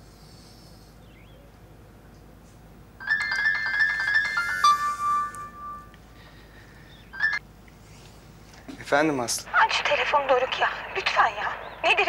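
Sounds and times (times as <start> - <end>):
phone ringtone melody: 3.0 - 6.0, 7.2 - 7.4.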